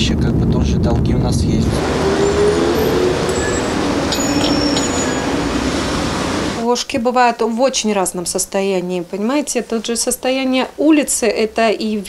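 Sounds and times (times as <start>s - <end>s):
street traffic noise: 0.0s - 7.0s.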